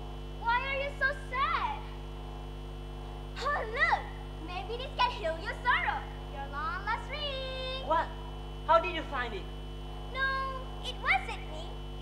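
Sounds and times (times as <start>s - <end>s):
girl's high-pitched voice: 0.4s - 1.9s, 3.4s - 7.8s, 10.1s - 11.8s.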